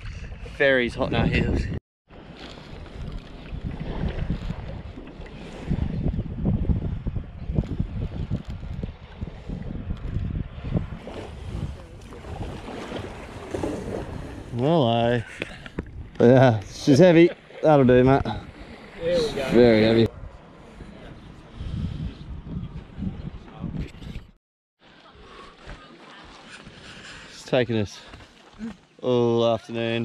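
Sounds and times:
wind buffeting microphone: 0:00.0 - 0:16.8, 0:17.7 - 0:24.4
water lapping against kayak: 0:02.1 - 0:16.8, 0:17.4 - 0:19.9, 0:24.8 - 0:27.4, 0:28.0 - 0:29.0.

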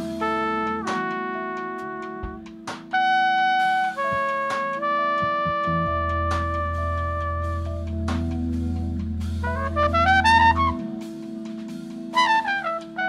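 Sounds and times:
trumpet long held notes: 0:00.0 - 0:08.1, 0:09.4 - 0:11.1, 0:12.1 - 0:13.0
jazz-funk band music: 0:00.0 - 0:13.0
steady drum hits: 0:01.8 - 0:03.0, 0:04.0 - 0:10.7.

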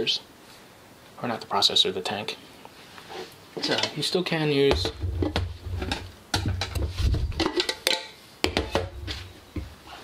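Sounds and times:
low thumps: 0:04.7 - 0:07.5
plastic tank clicks and knocks: 0:04.7 - 0:07.6.

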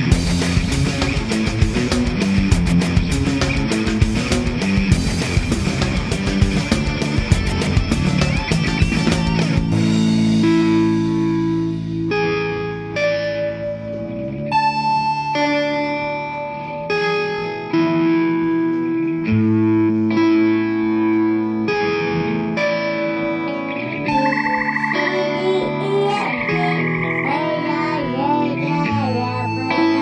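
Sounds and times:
bending guitar lead line: 0:00.0 - 0:30.0
guitar chords: 0:00.0 - 0:30.0.

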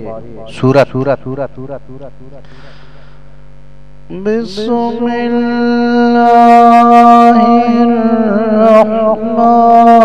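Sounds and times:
electrical mains hum: 0:00.0 - 0:10.0
faint hiss: 0:02.4 - 0:04.4.

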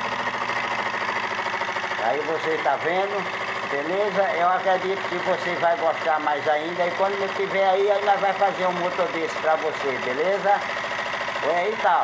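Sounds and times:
stirling engine mechanical rattle: 0:00.0 - 0:12.0.

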